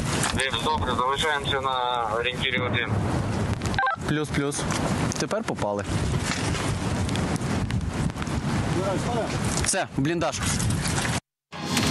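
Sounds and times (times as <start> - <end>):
wind noise on microphone: 0.0 - 11.2.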